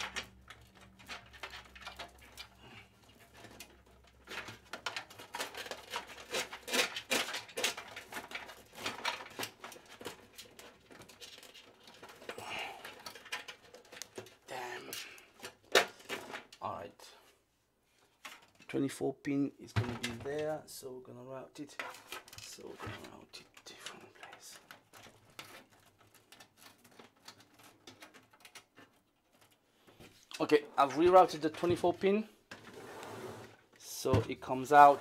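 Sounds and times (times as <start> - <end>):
cables rustling and scraping: 0.0 - 18.8, 21.6 - 35.0.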